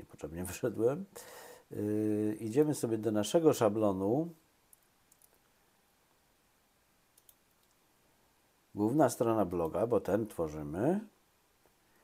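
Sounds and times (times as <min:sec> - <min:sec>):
computer mouse clicks: 0:04.7 - 0:05.5, 0:07.2 - 0:07.8.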